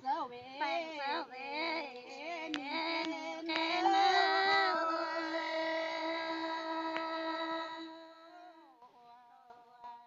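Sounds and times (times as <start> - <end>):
woman singing softly: 0.0 - 9.0.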